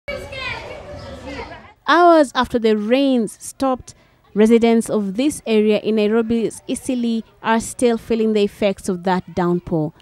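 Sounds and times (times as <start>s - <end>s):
children calling out: 0.1s - 1.8s.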